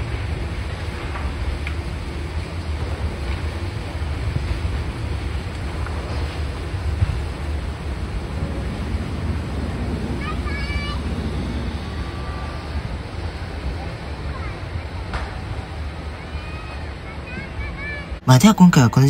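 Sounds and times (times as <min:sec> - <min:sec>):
wind buffeting microphone: 0:00.0 - 0:17.7
electric train running on tracks: 0:00.0 - 0:19.0.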